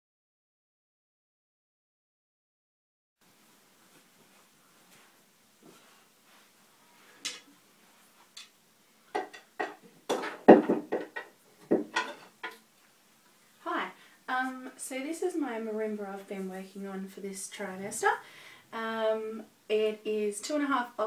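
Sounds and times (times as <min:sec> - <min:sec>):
hard objects clattering: 0:09.2 - 0:12.6.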